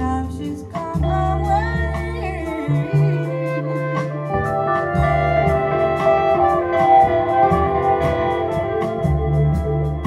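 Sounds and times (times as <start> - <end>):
bass: 0.0 - 10.0
jazz band playing: 0.0 - 10.0
trumpet line: 2.7 - 10.0.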